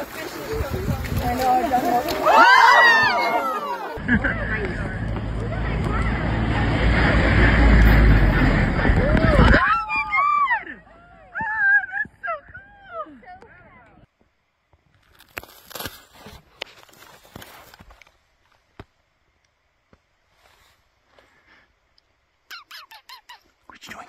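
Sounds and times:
snowshoes crunching in deep snow: 0:00.0 - 0:03.9
person laughing: 0:03.1 - 0:04.8.

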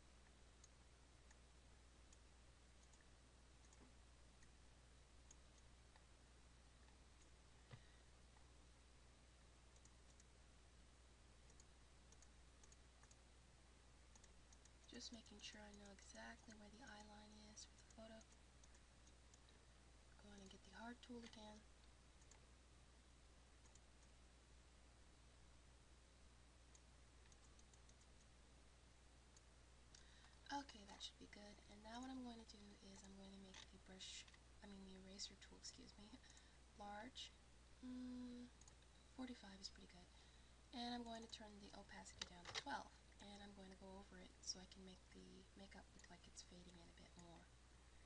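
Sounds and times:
low steady hum: 0:00.0 - 0:48.0
computer mouse clicks: 0:02.8 - 0:04.5, 0:09.7 - 0:10.3, 0:11.5 - 0:13.2, 0:14.1 - 0:19.6, 0:20.3 - 0:22.4, 0:23.6 - 0:24.2, 0:26.7 - 0:28.3, 0:38.6 - 0:39.0, 0:40.9 - 0:43.8.

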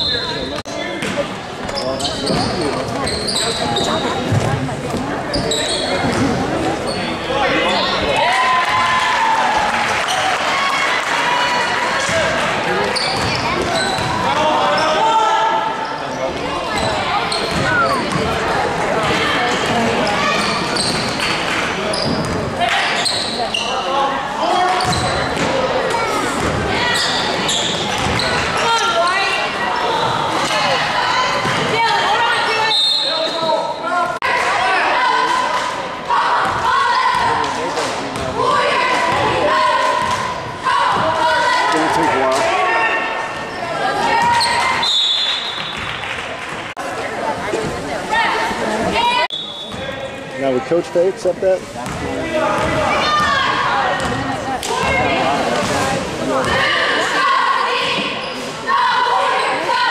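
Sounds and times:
voices echoing in hall: 0:00.0 - 0:59.9
basketball bouncing on court: 0:13.0 - 0:14.3, 0:16.8 - 0:18.4, 0:27.9 - 0:28.4, 0:51.8 - 0:55.0.

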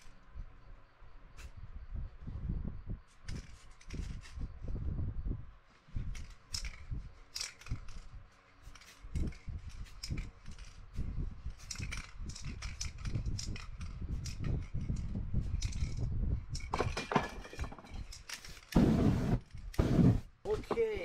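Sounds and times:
spray can bursts: 0:18.8 - 0:20.2.

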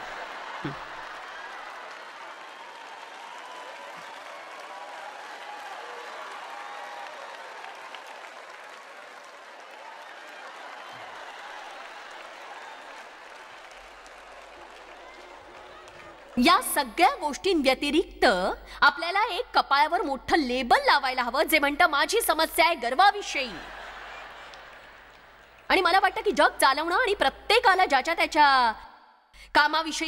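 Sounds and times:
audience applauding: 0:00.0 - 0:17.1, 0:23.0 - 0:27.1.

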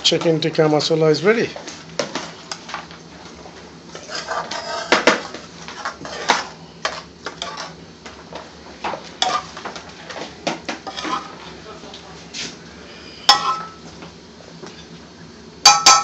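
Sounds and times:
steady low hum: 0:00.0 - 0:16.0
metal spoon clinking on dishes: 0:13.3 - 0:13.8, 0:15.7 - 0:16.0.

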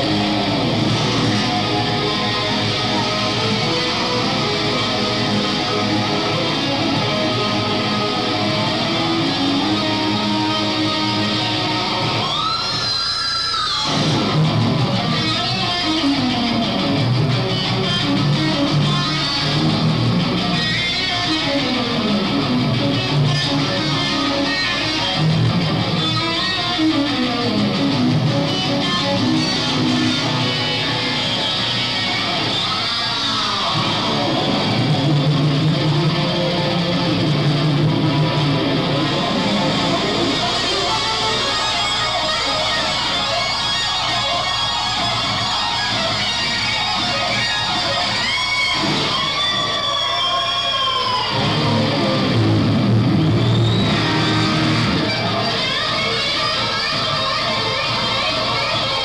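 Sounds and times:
electric guitar solo: 0:00.0 - 0:59.0.

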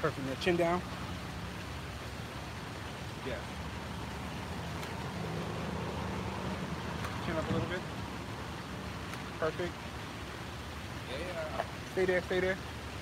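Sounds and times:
city street traffic: 0:00.0 - 0:13.0
vehicle engine low hum: 0:00.8 - 0:10.8.

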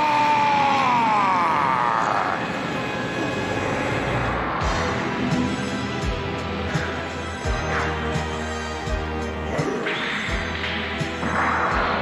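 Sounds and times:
steady rushing background: 0:02.2 - 0:12.0.

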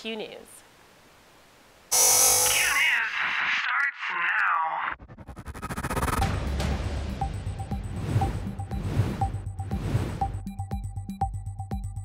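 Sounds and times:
swooping electronic tones: 0:01.9 - 0:03.0.

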